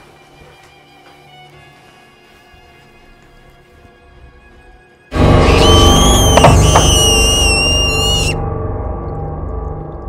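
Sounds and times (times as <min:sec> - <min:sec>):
high wavering screech: 0:05.3 - 0:08.4.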